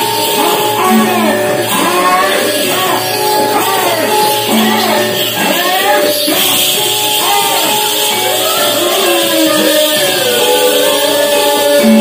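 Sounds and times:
melodic phrase with sliding pitches: 0:00.0 - 0:12.0.

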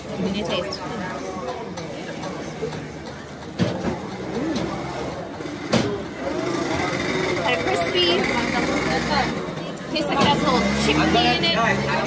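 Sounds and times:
motor scooter passing: 0:06.2 - 0:12.0.

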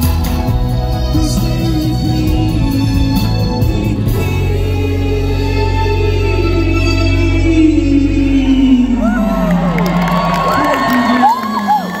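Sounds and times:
band music: 0:00.0 - 0:12.0
crowd cheering: 0:08.7 - 0:12.0
whoops: 0:08.8 - 0:12.0.

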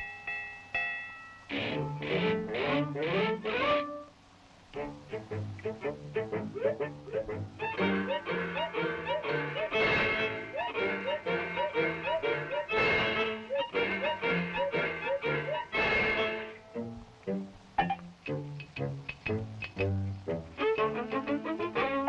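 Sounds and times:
bouncy orchestral cartoon music: 0:01.5 - 0:04.1, 0:04.7 - 0:22.0.

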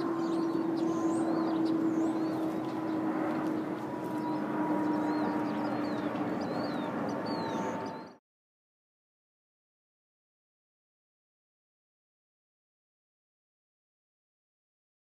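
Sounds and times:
high bird chirps: 0:00.0 - 0:03.0, 0:04.1 - 0:08.2
engine drone: 0:00.0 - 0:08.2
rushing background noise: 0:00.0 - 0:08.2.

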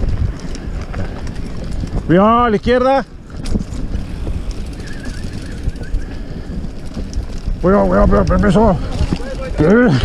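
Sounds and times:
bike rattling clicks: 0:00.0 - 0:10.0
bike tyres rumbling on dirt: 0:00.0 - 0:10.0
wind buffeting microphone: 0:00.0 - 0:10.0.

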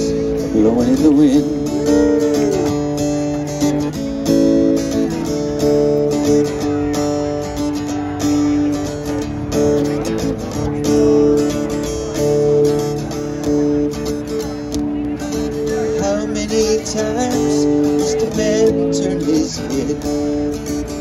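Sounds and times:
acoustic guitar strumming: 0:00.0 - 0:21.0
long held notes: 0:01.4 - 0:03.3.

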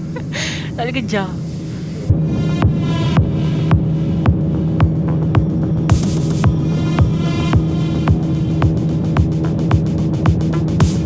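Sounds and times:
low bass drone: 0:00.0 - 0:11.0.

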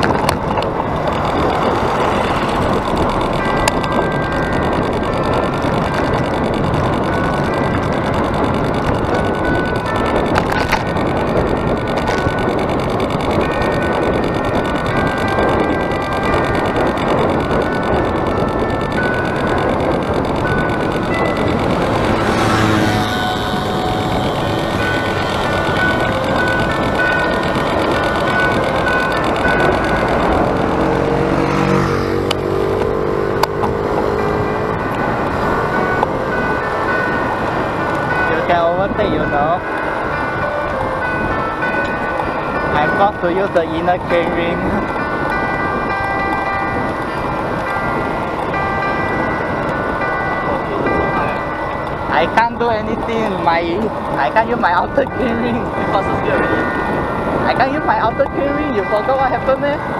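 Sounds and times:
wind and road noise: 0:00.0 - 0:59.9
short high tones: 0:05.1 - 0:32.2.

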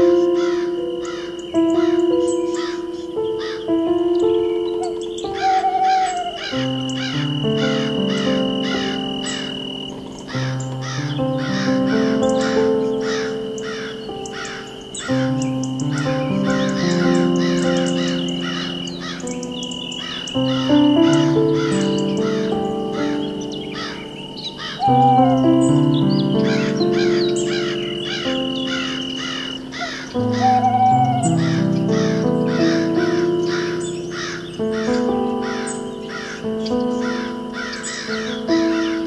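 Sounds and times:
rapid descending bird calls: 0:00.0 - 0:39.0
slow ambient music: 0:00.0 - 0:39.0.

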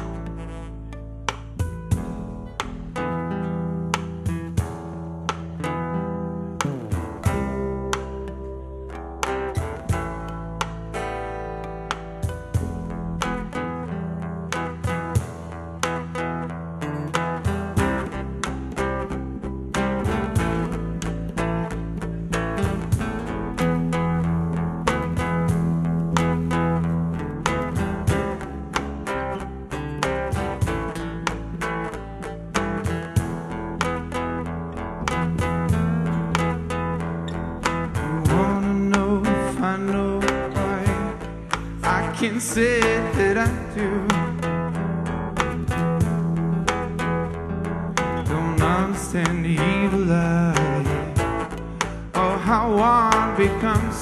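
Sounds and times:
guitar picked in quick notes: 0:00.0 - 0:54.0
sustained bass line: 0:00.0 - 0:54.0.

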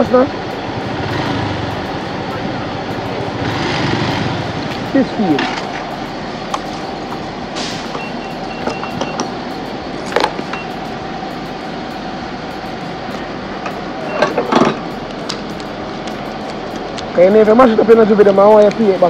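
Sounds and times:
steady hum: 0:00.0 - 0:19.0
short high beeps: 0:05.8 - 0:09.8, 0:10.4 - 0:12.9, 0:13.7 - 0:15.0.

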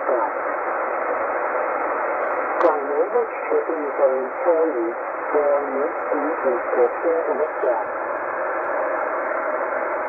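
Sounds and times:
radio broadcast voice: 0:00.0 - 0:00.4, 0:02.6 - 0:07.9
radio static hiss: 0:00.0 - 0:08.9.

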